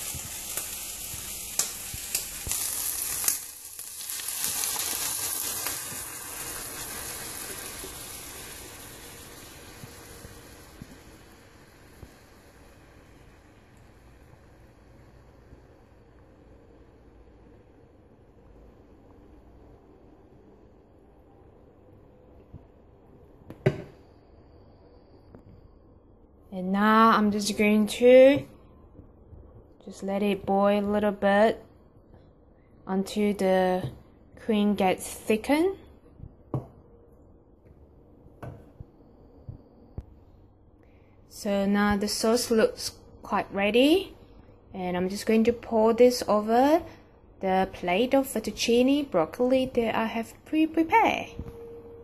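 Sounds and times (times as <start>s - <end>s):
cream being poured: 0.0s - 12.6s
bacon and onions sizzling in pan: 0.0s - 14.9s
faint high ring: 51.4s - 52.0s.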